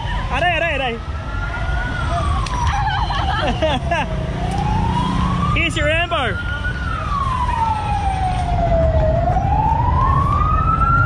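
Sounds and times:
street traffic rumble: 0:00.0 - 0:11.0
siren wailing: 0:00.1 - 0:11.0.

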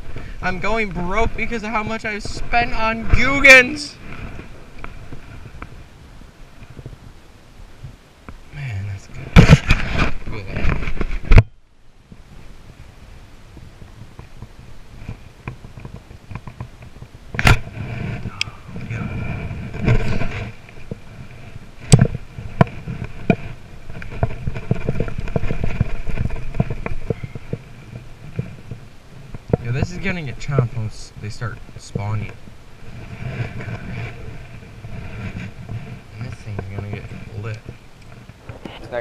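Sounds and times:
clothing rubbing on microphone: 0:00.0 - 0:07.2, 0:08.6 - 0:11.4, 0:12.1 - 0:39.0.

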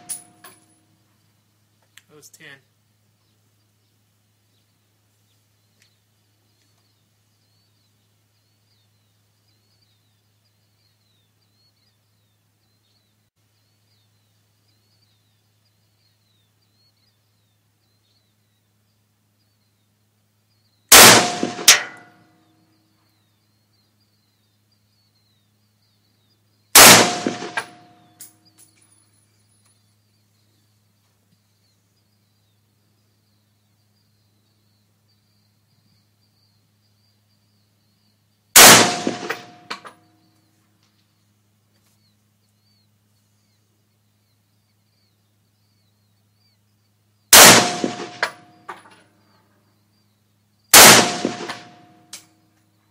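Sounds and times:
rifle shots: 0:20.9 - 0:22.1, 0:26.8 - 0:27.9, 0:38.6 - 0:39.9, 0:47.3 - 0:48.6, 0:50.7 - 0:51.9.

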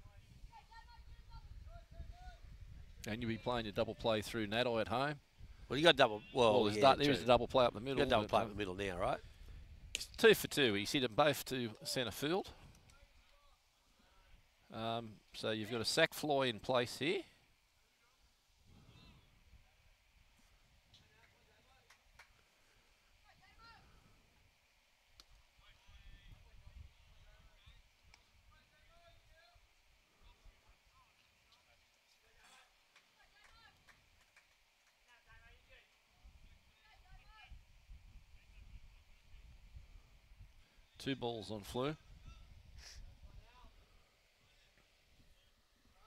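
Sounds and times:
faint clicks: 0:25.1 - 0:25.4.

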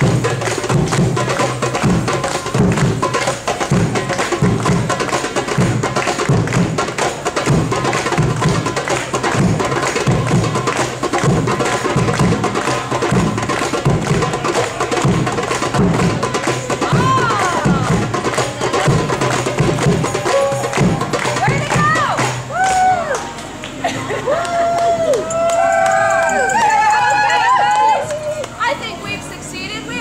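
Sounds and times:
goblet drums playing: 0:00.0 - 0:23.2.

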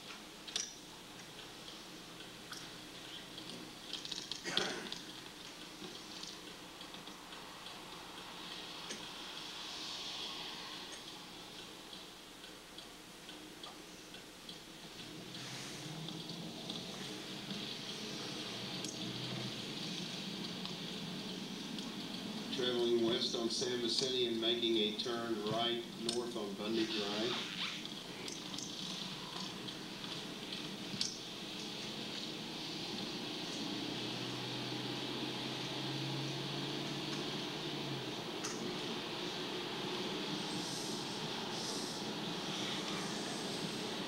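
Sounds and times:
car road and engine noise: 0:14.3 - 0:26.3, 0:27.8 - 0:44.0.

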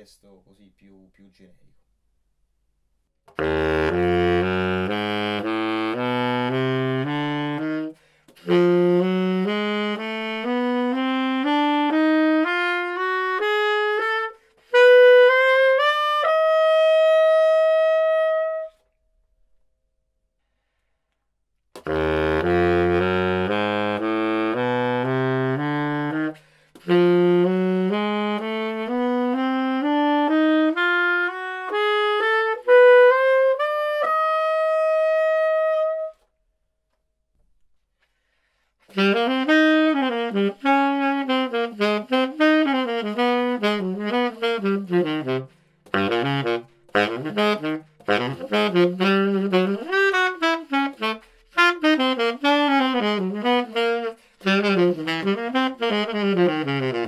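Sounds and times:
baritone saxophone playing a scale: 0:03.3 - 0:18.8, 0:21.8 - 0:36.3, 0:38.8 - 0:57.0.

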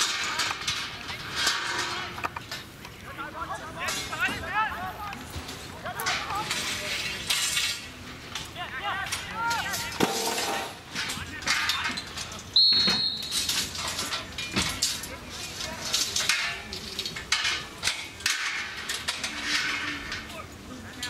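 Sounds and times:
players shouting: 0:08.4 - 0:10.4
referee's whistle blast: 0:12.6 - 0:13.3.

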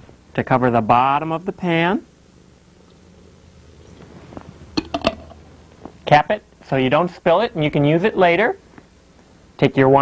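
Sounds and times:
liquid pouring into metal pan: 0:02.8 - 0:04.2
glass jar clicks: 0:04.8 - 0:05.4.

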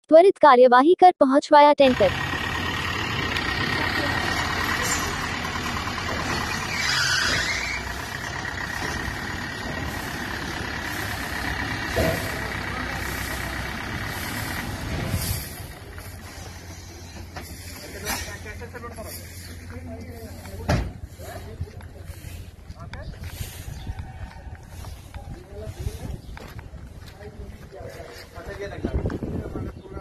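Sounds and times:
diesel truck engine idling: 0:01.8 - 0:27.7.

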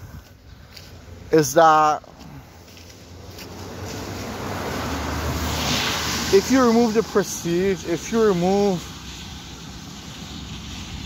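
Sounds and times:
even hiss: 0:04.4 - 0:11.0.

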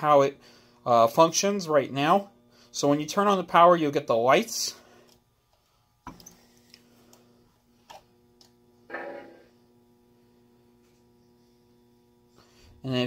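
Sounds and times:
steady electrical hum: 0:00.0 - 0:13.0.

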